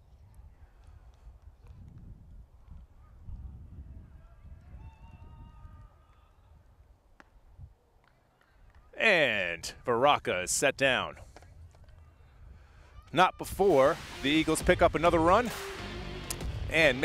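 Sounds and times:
wind rumble on microphone: 0.0s - 7.7s.

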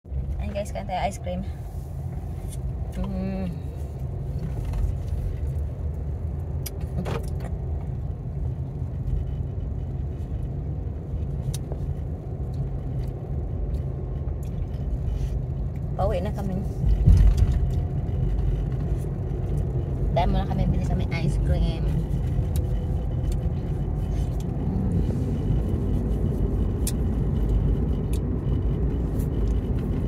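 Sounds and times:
car cabin low rumble: 0.1s - 30.0s.

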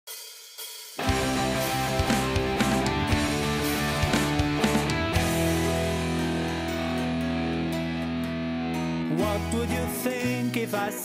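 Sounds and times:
drum hits: 1.0s - 7.6s
rock band playing: 1.0s - 10.8s.

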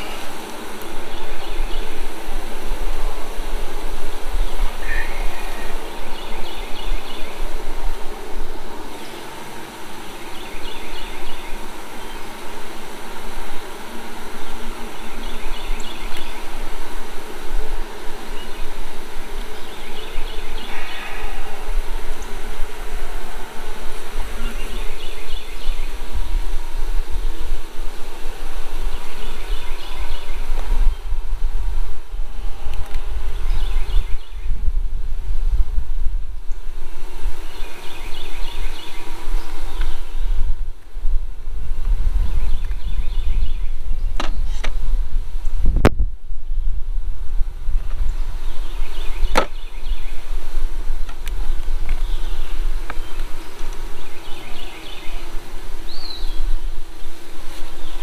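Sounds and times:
bees buzzing loudly: 0.0s - 45.8s, 46.5s - 58.0s.

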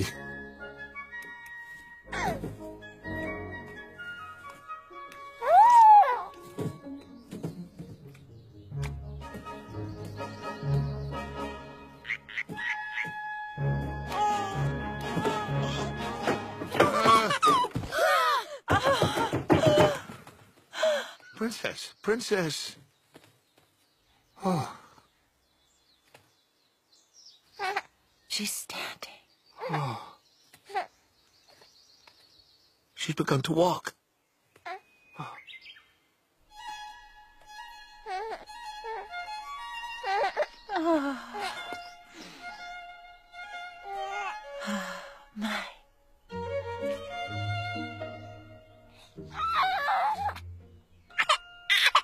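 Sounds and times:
soft film score music: 0.0s - 18.3s, 36.4s - 52.0s
baby crying: 5.4s - 6.4s, 14.1s - 16.2s, 38.0s - 39.3s, 40.0s - 41.7s, 43.8s - 44.5s, 49.3s - 50.5s, 51.1s - 52.0s.

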